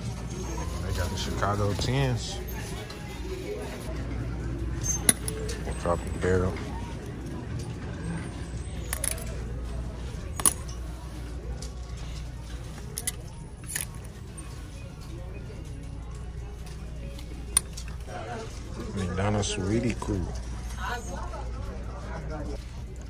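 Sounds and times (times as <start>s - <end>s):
store background hum: 0.0s - 23.0s.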